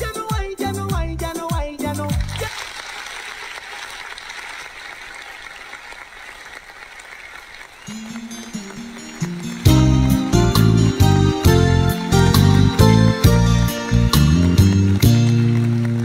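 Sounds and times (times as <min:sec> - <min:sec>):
rhythmic track with heavy bass: 0:00.0 - 0:02.5, 0:08.0 - 0:16.0
slow instrumental backing track: 0:07.9 - 0:16.0.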